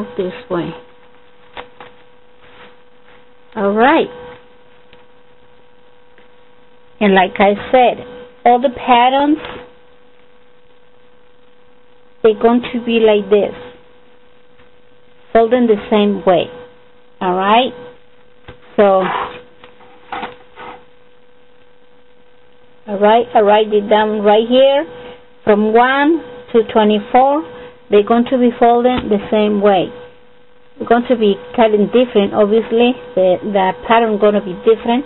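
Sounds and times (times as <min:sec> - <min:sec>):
person speaking: 0:00.0 - 0:00.9, 0:03.5 - 0:04.2, 0:07.0 - 0:09.5, 0:18.7 - 0:19.4
steady electrical hum: 0:00.0 - 0:35.0
thin paper rustling: 0:01.0 - 0:03.2.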